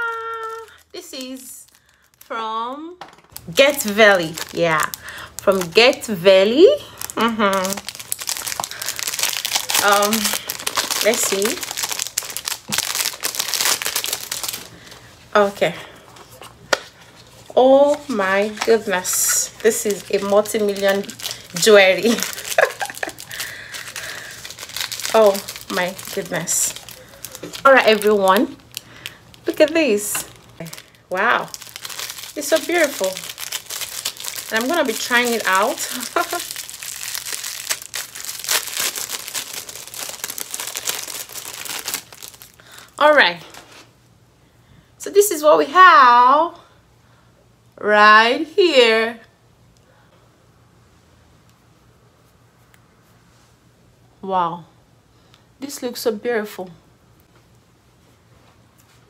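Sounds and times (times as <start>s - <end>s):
plastic bag crinkling: 0.0s - 2.4s, 3.2s - 15.2s, 17.2s - 43.9s.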